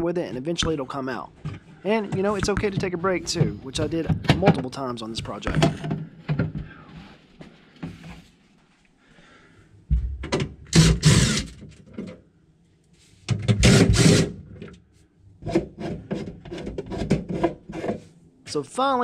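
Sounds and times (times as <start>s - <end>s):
plastic parts clicking and knocking: 1.4s - 6.7s
cordless drill driving screws: 10.7s - 11.6s, 13.6s - 14.4s.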